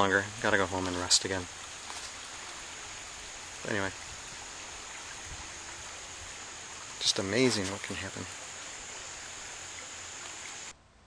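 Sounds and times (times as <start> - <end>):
river water rushing: 0.0 - 10.7.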